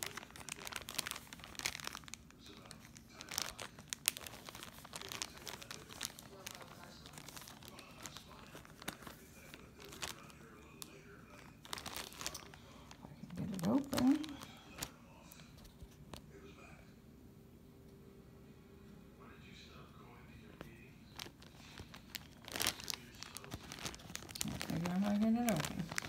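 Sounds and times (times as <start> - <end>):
plastic bags crinkling: 0.0 - 15.4, 21.1 - 26.0.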